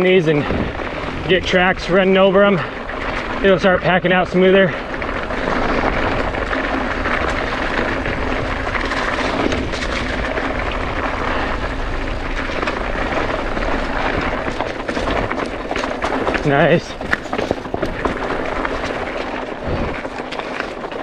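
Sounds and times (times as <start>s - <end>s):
bike tyres on gravel: 0.0s - 21.0s
stones and bike rattling: 0.0s - 21.0s
wind rumble on microphone: 0.0s - 21.0s.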